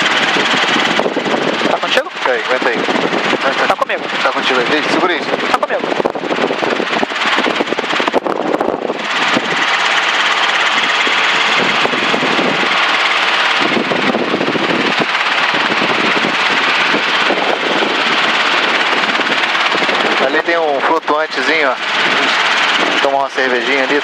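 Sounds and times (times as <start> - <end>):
helicopter engine and rotor noise: 0.0 - 24.0.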